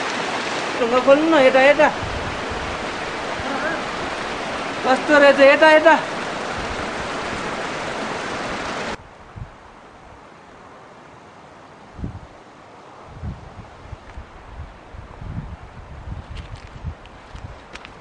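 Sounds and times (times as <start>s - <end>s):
loud steady rushing noise: 0.0s - 9.1s
wind buffeting microphone: 0.2s - 5.5s, 6.1s - 10.3s, 11.9s - 12.4s, 13.0s - 18.0s.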